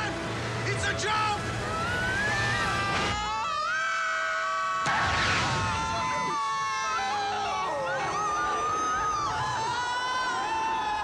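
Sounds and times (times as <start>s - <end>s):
people screaming and yelling: 0.7s - 11.0s.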